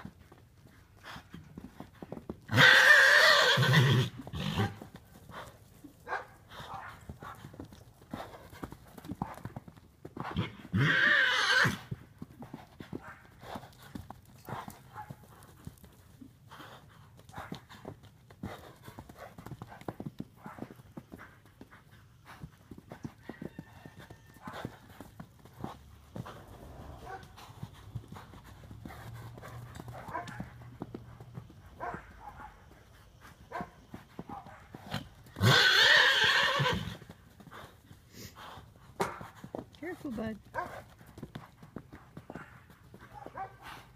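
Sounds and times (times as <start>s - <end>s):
hoofbeats on dirt: 0.0s - 43.9s
horse whinnying: 2.5s - 4.8s, 10.3s - 11.9s, 35.3s - 37.1s.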